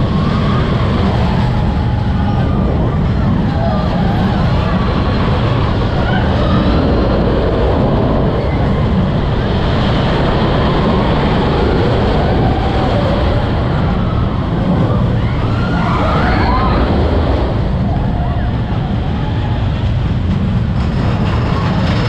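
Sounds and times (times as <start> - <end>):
roller coaster rumbling on track: 0.0 - 22.0.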